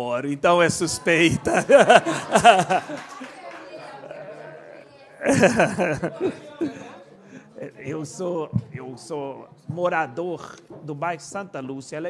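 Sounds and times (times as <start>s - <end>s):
murmur of room noise: 0.0s - 12.0s
burst of laughter: 1.4s - 6.8s.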